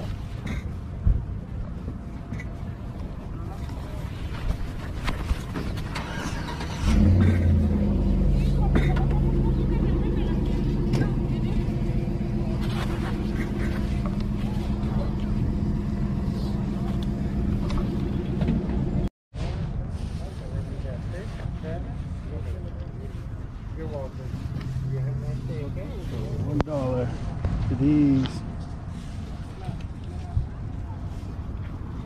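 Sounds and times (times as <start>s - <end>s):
car engine starting and running: 5.4s - 19.1s.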